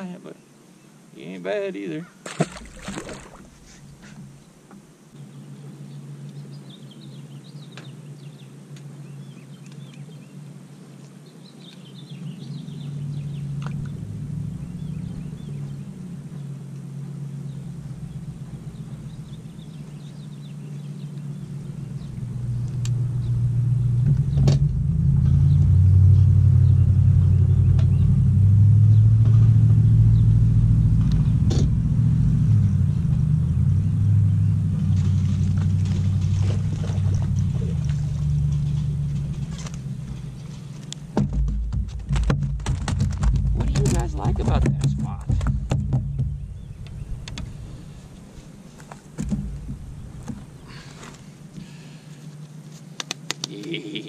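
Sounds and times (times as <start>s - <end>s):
trolling motor humming: 2.3s - 52.4s
rapid clicks and rattles: 38.4s - 46.3s.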